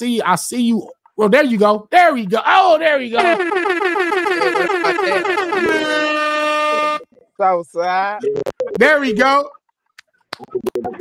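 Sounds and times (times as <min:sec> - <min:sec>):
buzzy warbling horn tone: 0:03.2 - 0:07.1.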